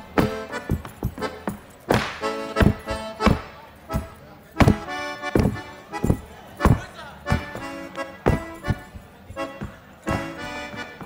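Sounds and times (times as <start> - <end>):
accordion playing held notes: 0.0 - 11.0
boots stomping on stage floor: 0.0 - 11.0.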